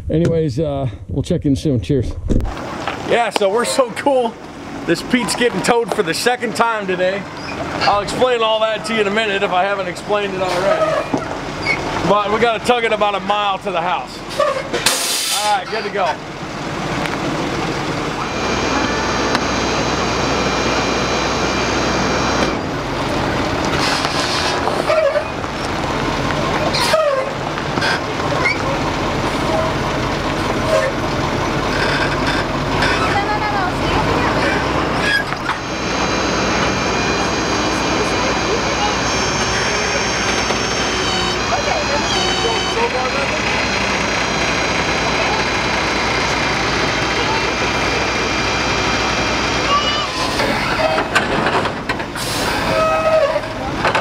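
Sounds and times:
truck engine running: 2.5 - 54.0.

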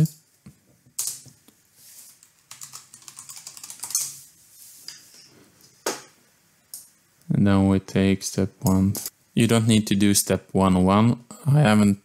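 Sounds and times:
keyboard keys clicking: 2.5 - 4.0.

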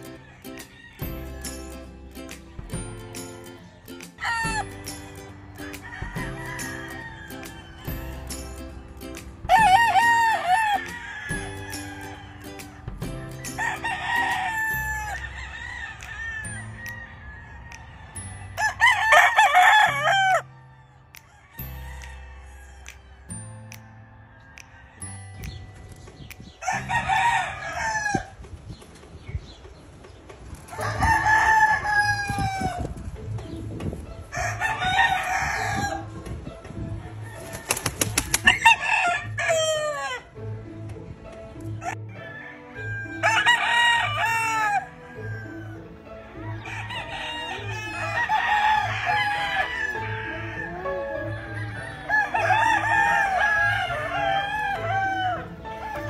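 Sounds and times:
roosters crowing: 0.0 - 25.4, 26.6 - 28.6, 30.5 - 33.2, 34.3 - 40.5, 41.8 - 56.0
background music with steady beat: 0.0 - 56.0
wing flapping: 37.4 - 38.6.

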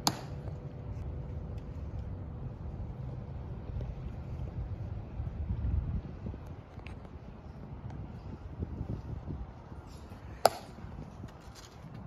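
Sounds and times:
wind rumble on microphone: 0.9 - 12.0.

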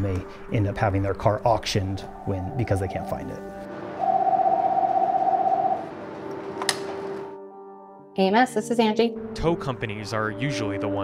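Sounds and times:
desk phone ringing: 3.9 - 6.5.

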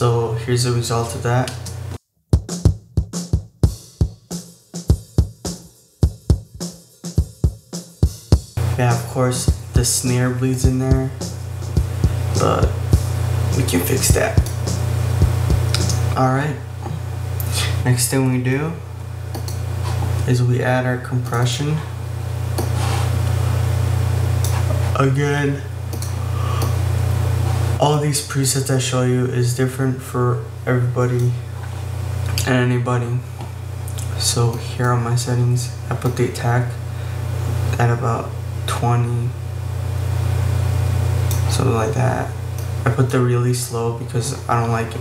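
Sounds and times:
kick drum hits: 2.4 - 4.2
snare drum bleed: 2.4 - 16.2
steady low hum: 8.1 - 45.0.

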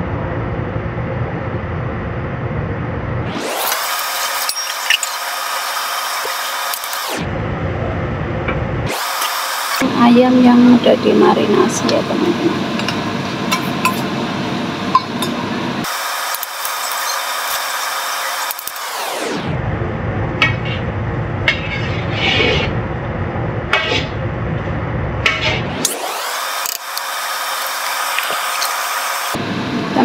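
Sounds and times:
food frying in a wok: 12.5 - 19.0
metal skimmer scraping a pan: 21.5 - 22.7.

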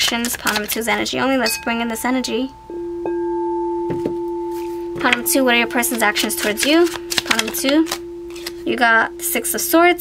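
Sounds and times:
singing bowl ringing: 1.4 - 10.0.

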